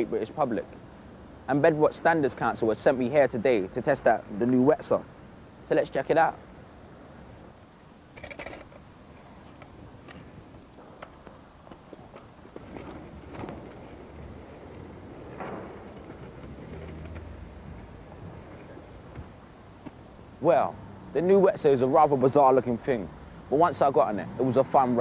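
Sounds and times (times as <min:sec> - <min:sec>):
faint background noise: 0:00.0 - 0:25.0
scooter board and wheels clacking: 0:09.4 - 0:19.3.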